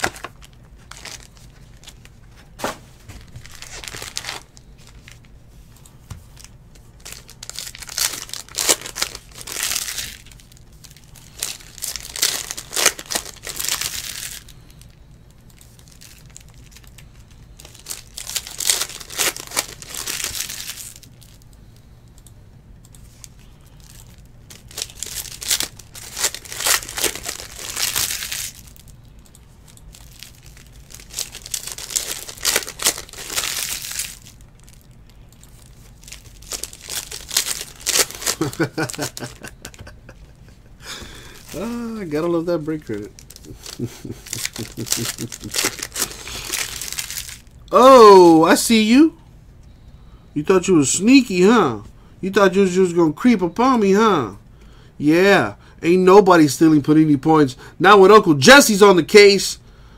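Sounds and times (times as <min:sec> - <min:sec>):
foil wrappers crinkling and tearing: 0:00.0 - 0:05.3, 0:06.4 - 0:21.5, 0:23.2 - 0:29.0, 0:29.8 - 0:40.1, 0:40.8 - 0:48.6.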